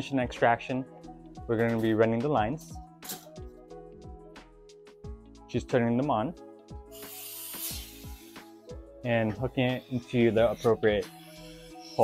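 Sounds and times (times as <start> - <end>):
background music: 0.0 - 12.0
dental suction hissing: 6.8 - 12.0.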